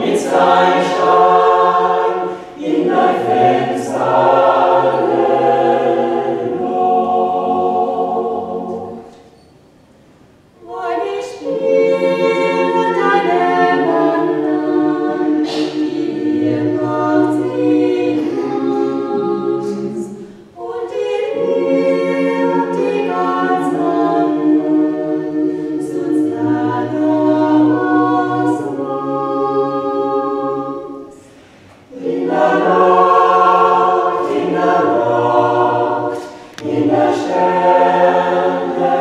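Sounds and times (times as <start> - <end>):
choir singing unaccompanied: 0.0 - 9.4, 10.6 - 39.0.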